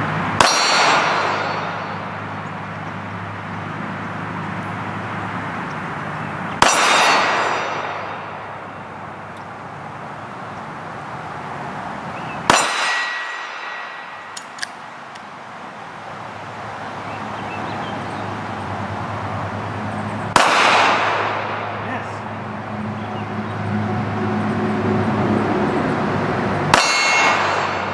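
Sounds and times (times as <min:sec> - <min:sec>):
steel target clanging: 0:00.4 - 0:02.4, 0:06.6 - 0:09.3, 0:12.5 - 0:14.8, 0:26.7 - 0:27.9
pistol shot: 0:06.6 - 0:08.6, 0:12.5 - 0:14.7, 0:20.3 - 0:21.8, 0:26.7 - 0:27.9.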